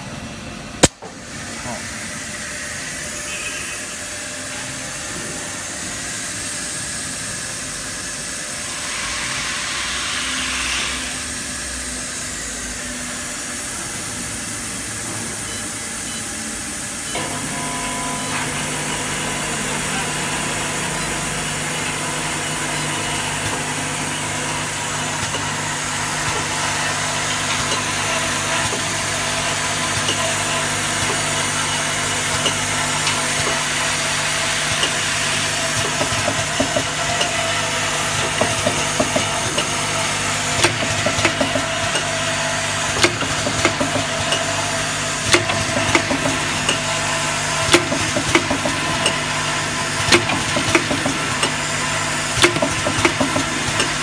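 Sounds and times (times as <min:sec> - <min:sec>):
machine motors humming: 0:14.2 - 0:54.0.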